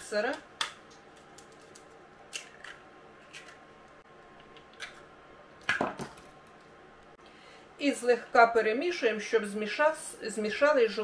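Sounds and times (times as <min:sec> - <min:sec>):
eggshells cracking: 0:00.6 - 0:03.7.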